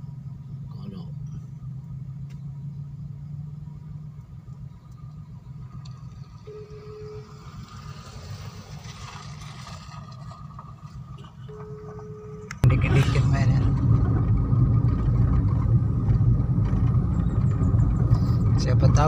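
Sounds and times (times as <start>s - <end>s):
car engine idling: 0.0s - 19.0s
short beeps: 6.5s - 7.4s, 11.4s - 12.6s
motorcycle engine approaching: 12.6s - 19.0s.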